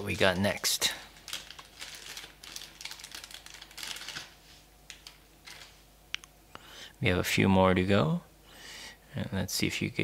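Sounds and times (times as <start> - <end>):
packaging rustling and crinkling: 0.0 - 5.9.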